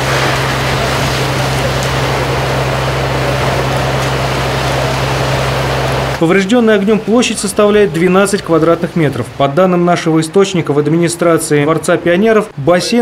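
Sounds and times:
fire truck engine humming: 0.0 - 9.4.

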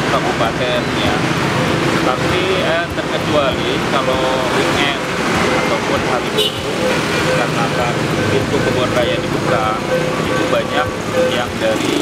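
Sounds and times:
indistinct voices: 0.0 - 12.0
passing cars and motorbikes: 0.0 - 12.0.

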